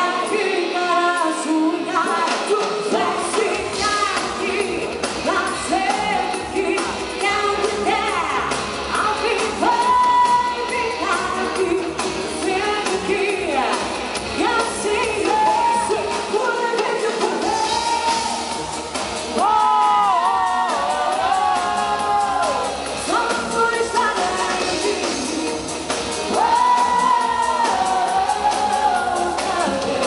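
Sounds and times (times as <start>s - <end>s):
live pop band playing: 0.0s - 30.0s
woman singing lead: 0.0s - 30.0s.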